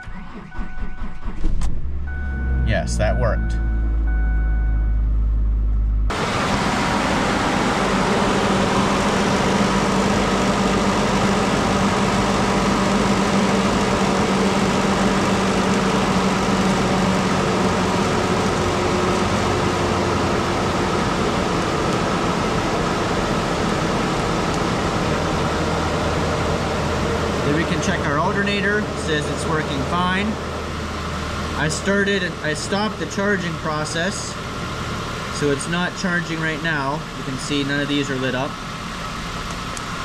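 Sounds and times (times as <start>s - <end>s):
low hum: 0.0s - 33.7s
engine idling: 0.0s - 40.0s.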